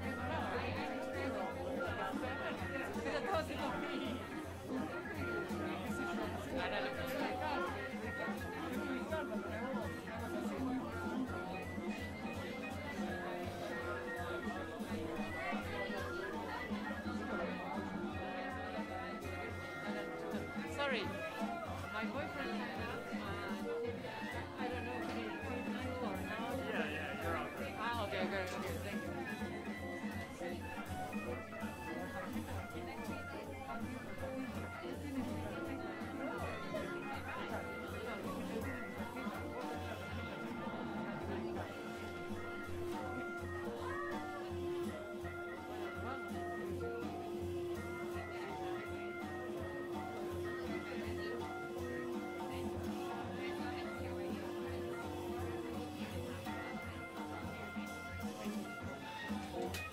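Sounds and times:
crowd chatter: 0.0 - 59.9.

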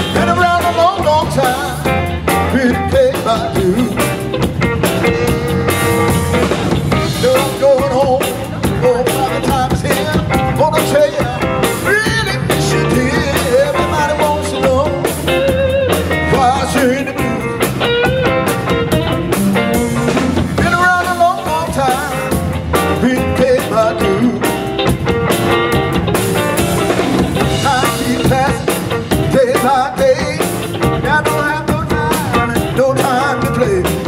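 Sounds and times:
bending lead guitar notes: 0.0 - 34.0
drums: 0.0 - 34.0
electric bass: 0.0 - 34.0.

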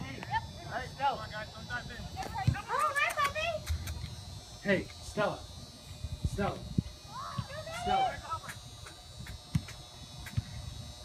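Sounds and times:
faint high whine: 0.0 - 11.0.

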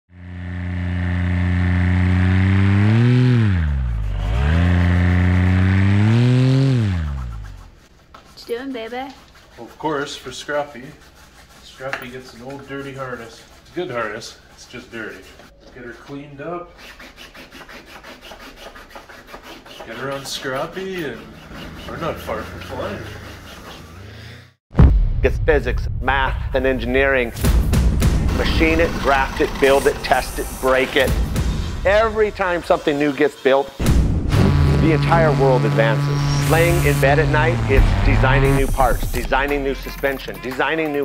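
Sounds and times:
engine revving: 0.1 - 7.7, 21.3 - 24.6, 28.2 - 32.7, 33.8 - 39.8
cloth scrubbing fabric: 6.8 - 15.5, 16.7 - 24.0.

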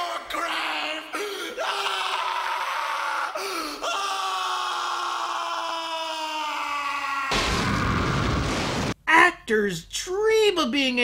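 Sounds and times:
man screaming: 0.0 - 8.2.

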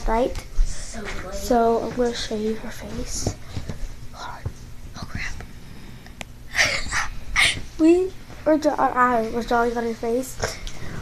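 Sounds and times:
person whispering: 4.2 - 5.4.

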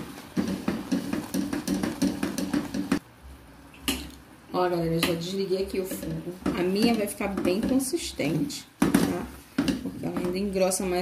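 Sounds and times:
jam bubbling: 0.0 - 3.1.

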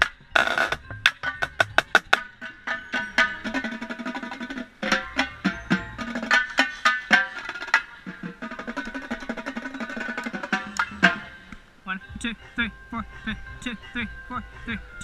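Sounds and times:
fast run of struck notes: 0.0 - 14.8.

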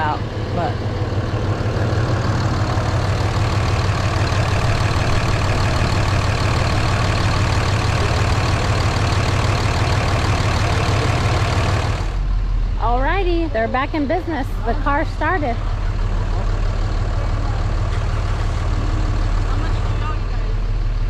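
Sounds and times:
diesel truck engine idling: 0.0 - 21.0.

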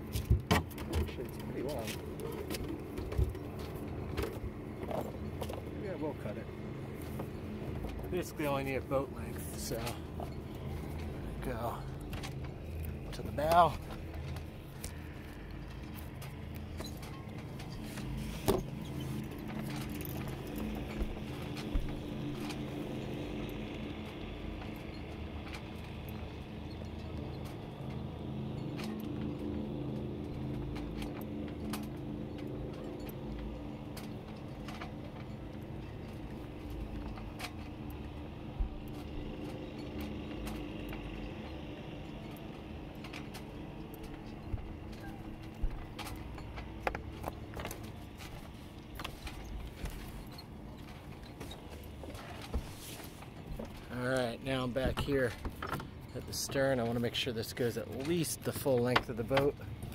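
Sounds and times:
clicks and knocks of rope and hardware: 0.0 - 59.9
low motor hum: 0.0 - 59.9.

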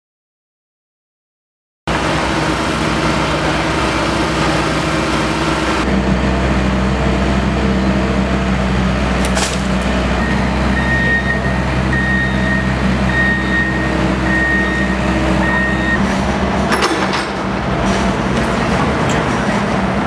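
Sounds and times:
machinery engine running: 1.9 - 20.0
reversing alarm beeps: 10.2 - 16.1
metal clank: 16.6 - 18.0.

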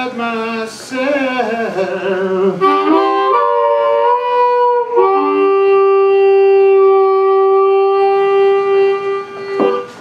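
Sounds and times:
harmonica notes: 1.3 - 10.0.

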